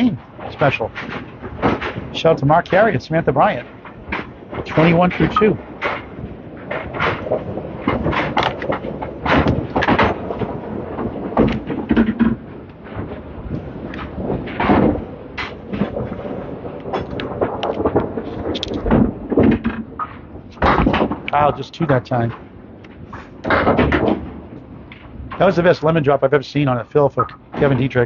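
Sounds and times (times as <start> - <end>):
bowling balls knocking on lanes: 5.8 - 12.5.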